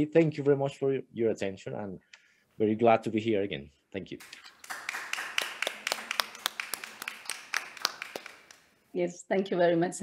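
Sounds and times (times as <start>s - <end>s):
small audience applauding: 4.2s - 8.7s.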